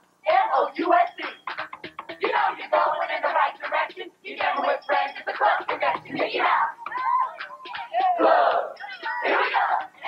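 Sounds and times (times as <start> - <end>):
crowd shouting and cheering: 2.2 - 10.0.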